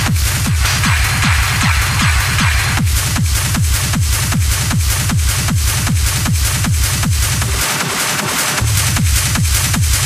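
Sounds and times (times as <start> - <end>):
hard techno with pounding kick drum: 0.0 - 10.0.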